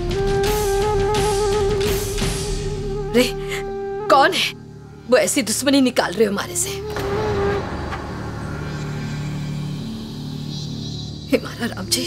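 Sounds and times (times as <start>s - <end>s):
low droning rumble: 7.0s - 11.3s.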